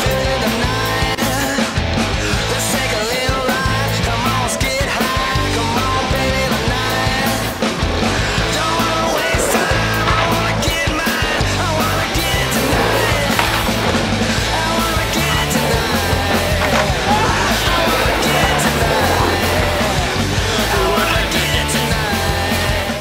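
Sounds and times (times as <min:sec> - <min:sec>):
loud rock music: 0:00.0 - 0:23.0.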